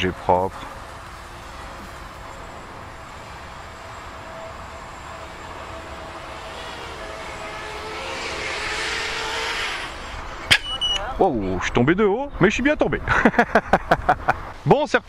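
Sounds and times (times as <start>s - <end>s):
drone propellers buzzing: 0.0s - 11.2s.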